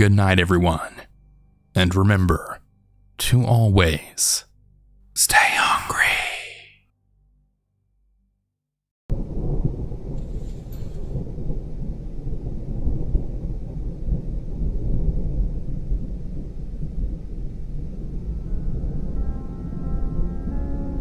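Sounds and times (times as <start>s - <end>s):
rolling rumble of thunder: 9.1s - 21.0s.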